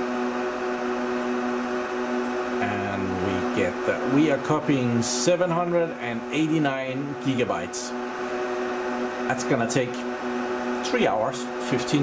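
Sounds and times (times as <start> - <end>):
computer cooling fans humming: 0.0 - 12.0.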